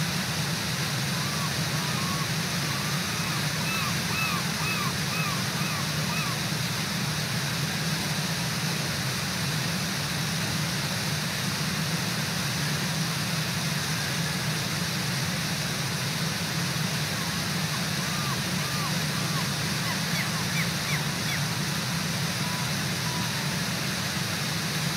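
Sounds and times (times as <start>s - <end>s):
river whitewater: 0.0s - 24.9s
waterfall rushing: 0.0s - 24.9s
rising and falling calls: 1.1s - 6.5s, 17.2s - 21.6s, 22.4s - 23.5s.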